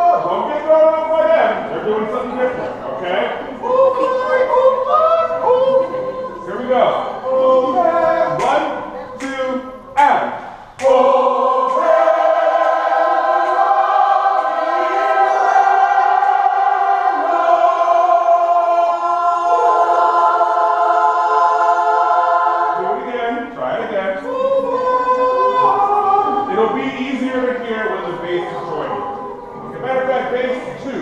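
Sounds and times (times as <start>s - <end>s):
choir singing a cappella: 0.0s - 31.0s.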